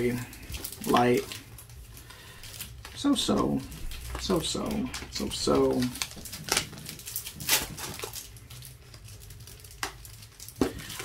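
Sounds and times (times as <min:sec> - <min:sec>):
foil wrappers crinkling: 0:00.0 - 0:11.0.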